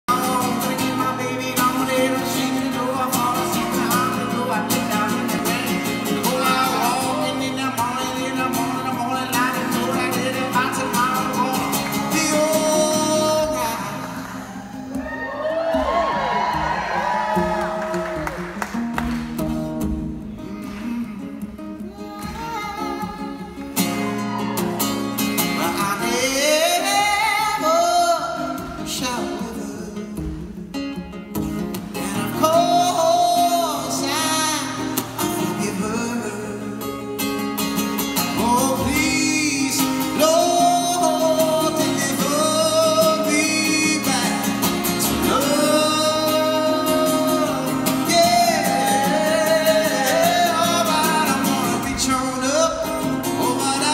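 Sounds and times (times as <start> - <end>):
man singing: 0.0 - 15.1, 20.4 - 53.9
strummed acoustic guitar: 0.1 - 53.9.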